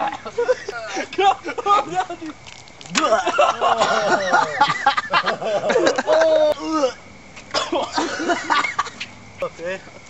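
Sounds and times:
man coughing: 3.1s - 4.9s, 7.5s - 9.0s.

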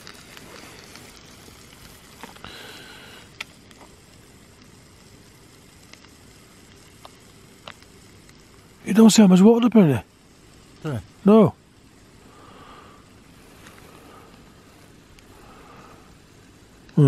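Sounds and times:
gas stove hissing: 0.0s - 17.0s.

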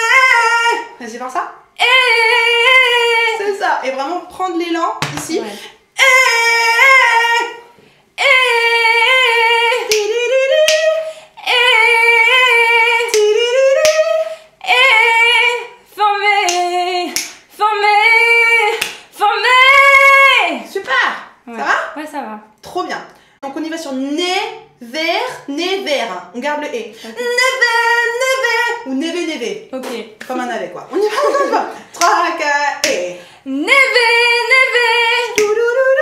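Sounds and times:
woman singing vowel: 0.0s - 4.4s, 6.0s - 20.7s, 27.1s - 29.2s, 31.9s - 36.0s
breaths: 5.4s - 5.9s, 7.8s - 8.2s, 11.0s - 11.4s, 23.1s - 23.4s, 26.9s - 27.2s, 33.1s - 33.5s.

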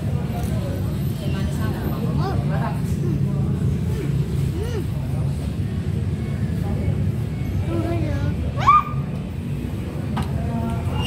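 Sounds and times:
road traffic engines rumbling: 0.0s - 11.0s.

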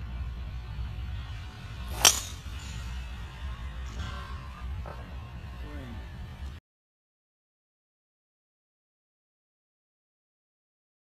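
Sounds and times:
low steady rumble: 0.0s - 6.6s
golf club striking ball: 1.8s - 2.8s.

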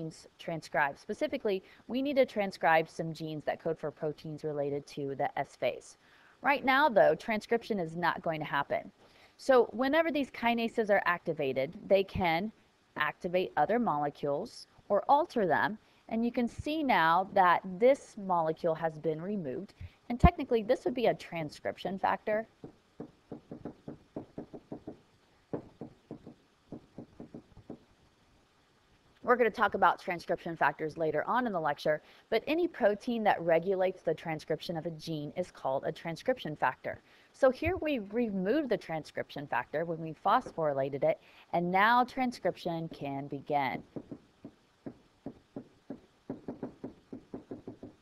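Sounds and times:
stylus tapping on tablet screen: 22.6s - 27.9s, 43.8s - 48.0s.

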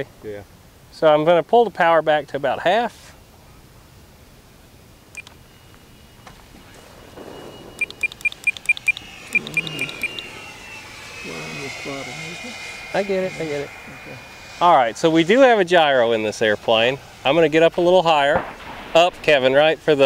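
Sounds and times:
electric ducted fan whine: 0.0s - 20.0s
short high beeps: 5.2s - 10.6s.

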